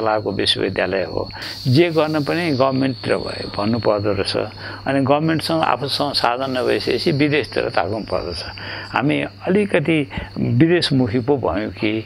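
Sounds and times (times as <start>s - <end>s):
high-pitched insect drone: 0.0s - 12.0s
man talking: 0.0s - 12.0s.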